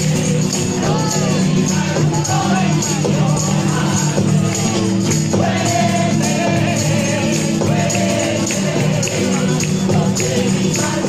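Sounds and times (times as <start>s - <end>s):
acoustic guitar: 0.0s - 11.0s
choir singing: 0.0s - 11.0s
tambourines jingling: 0.0s - 11.0s.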